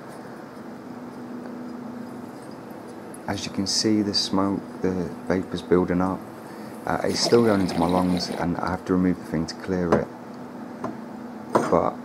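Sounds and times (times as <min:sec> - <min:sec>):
water bubbling in glass bubbler: 0:07.1 - 0:08.6.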